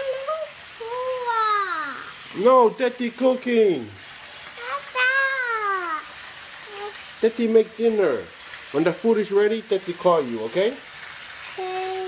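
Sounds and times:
toddler whining: 0.0 - 2.2, 4.6 - 7.0, 11.6 - 12.0.

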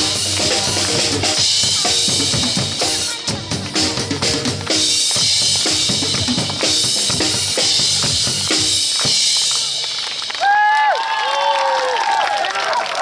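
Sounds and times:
pop backing track: 0.0 - 9.4
drum kit playing: 0.0 - 10.4.

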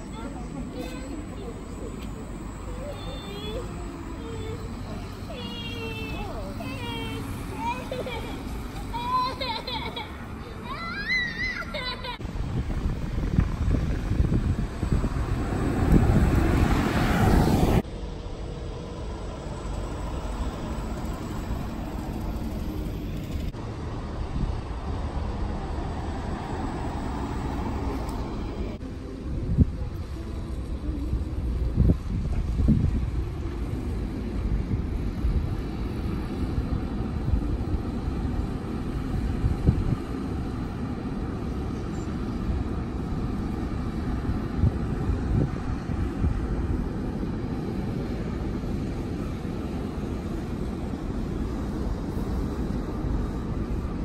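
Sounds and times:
buses moving at low speed: 0.0 - 54.0
wind thumps on microphone: 12.2 - 17.8, 31.5 - 36.1.

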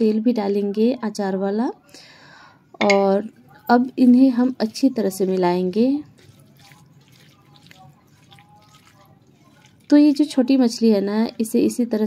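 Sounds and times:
hand mixing fish wet squelching: 3.4 - 11.9.

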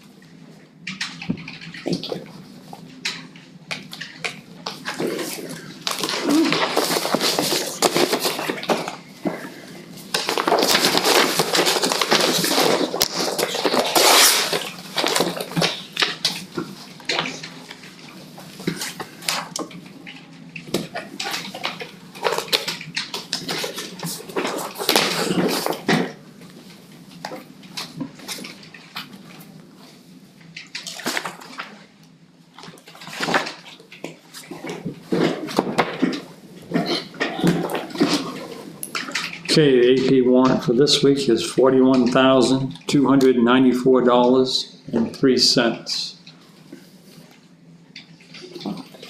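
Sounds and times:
paper rustling and shuffling: 1.1 - 31.9, 32.5 - 42.6.

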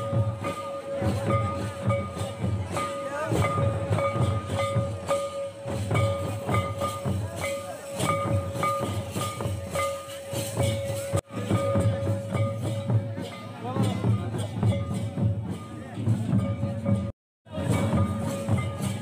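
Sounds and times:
drums beaten with sticks: 0.0 - 19.0.

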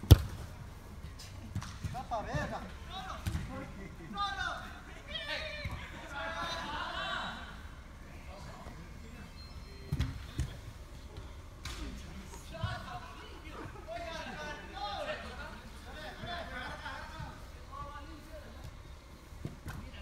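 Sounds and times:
ball being kicked: 0.0 - 0.4
players shouting: 2.8 - 7.8.

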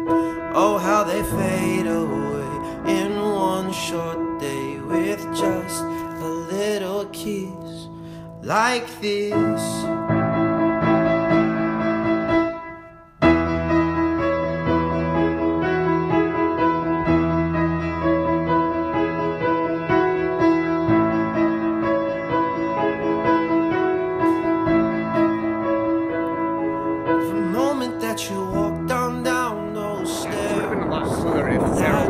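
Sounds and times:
piano background music: 0.0 - 32.0
bass line: 13.2 - 32.0.

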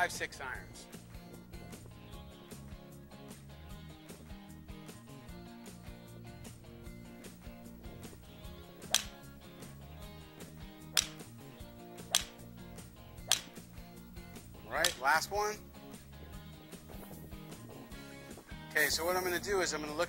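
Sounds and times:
background music: 0.0 - 20.0
golf club striking balls: 7.4 - 18.7.

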